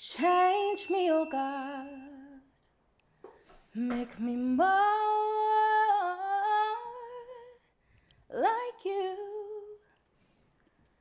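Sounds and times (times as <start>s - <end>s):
woman singing with vibrato: 0.0s - 2.5s, 3.7s - 7.6s, 8.3s - 9.9s.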